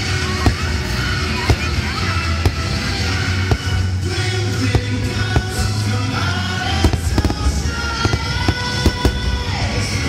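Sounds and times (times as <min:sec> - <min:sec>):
fireworks show music: 0:00.0 - 0:10.0
sharp firework bangs: 0:00.4 - 0:09.6.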